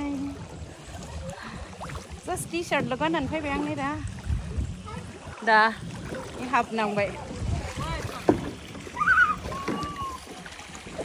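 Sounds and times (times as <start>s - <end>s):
water sloshing and splashing: 0.0s - 11.0s
child calling: 9.0s - 10.3s.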